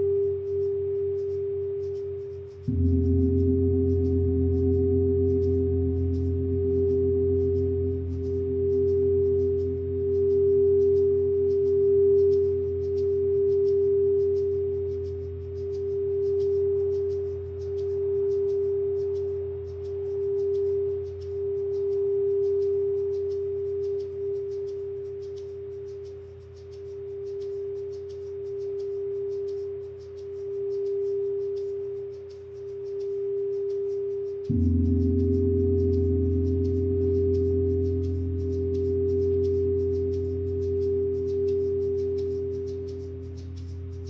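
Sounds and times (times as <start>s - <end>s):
low hum: 0.0s - 44.0s
singing bowl tone: 0.0s - 44.0s.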